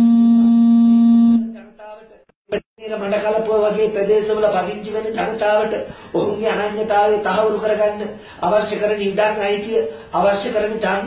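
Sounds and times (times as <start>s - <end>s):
man holding a long note: 0.0s - 1.6s.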